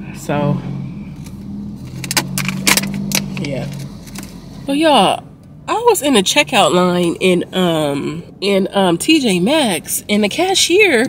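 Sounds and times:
car keys jangling: 1.9 - 4.3.

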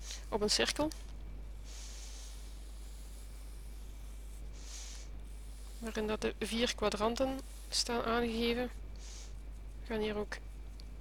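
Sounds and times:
low electrical hum: 0.0 - 11.0
pen scratching on paper: 1.7 - 10.6.

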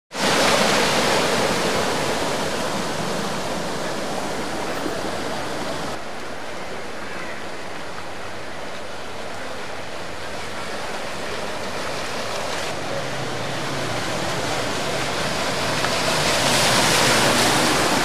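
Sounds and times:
floodwater splashing and rushing: 0.1 - 18.0.

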